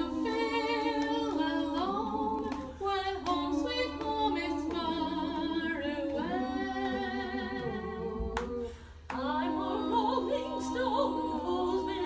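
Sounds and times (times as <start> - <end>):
voices singing in close harmony: 0.0 - 12.0.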